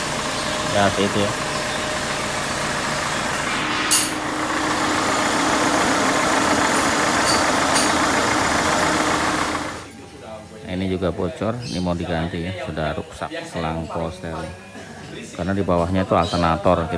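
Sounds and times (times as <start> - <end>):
car engine idling: 0.0 - 9.9.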